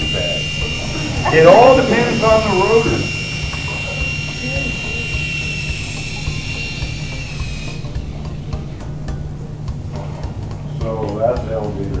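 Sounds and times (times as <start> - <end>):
toy helicopter motors whining: 0.0 - 8.8.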